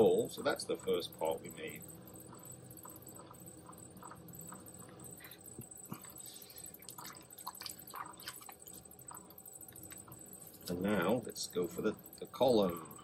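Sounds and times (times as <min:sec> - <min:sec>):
small irregular clicks: 0:00.0 - 0:10.8
faint steady hum: 0:00.0 - 0:13.0.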